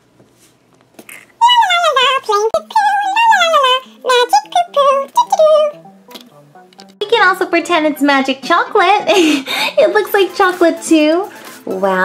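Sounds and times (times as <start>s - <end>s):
light background music: 1.8s - 12.0s.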